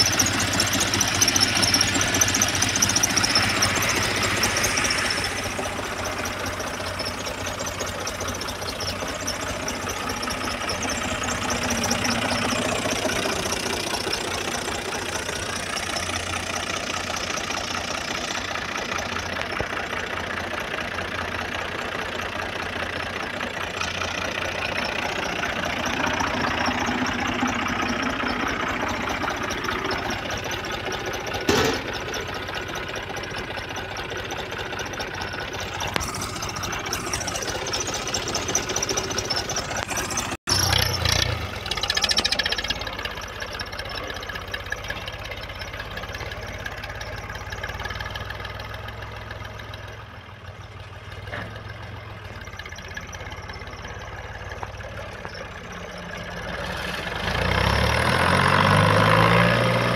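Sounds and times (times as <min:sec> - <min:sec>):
tractor diesel engine running: 0:00.0 - 0:59.9
thump: 0:31.5 - 0:32.0.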